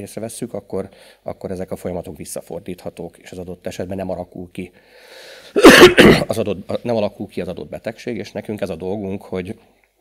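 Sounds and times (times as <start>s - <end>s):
short breath in: 4.8s - 5.6s
man coughing: 5.6s - 6.4s.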